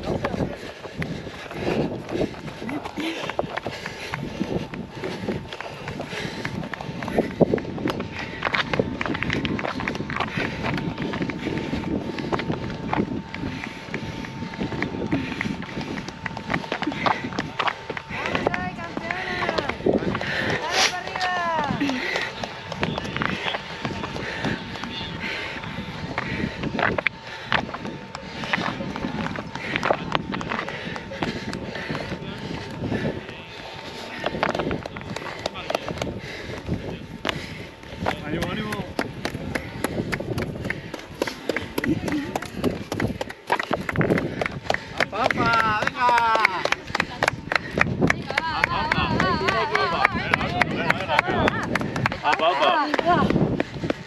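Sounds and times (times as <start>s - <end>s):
person breathing: 0.0s - 22.6s, 23.2s - 45.8s
footsteps on rocky ground: 0.0s - 54.0s
voices calling out: 9.9s - 53.9s.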